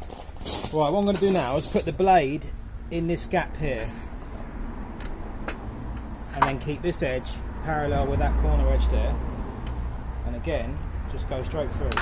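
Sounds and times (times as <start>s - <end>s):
low steady rumble: 0.0s - 11.2s.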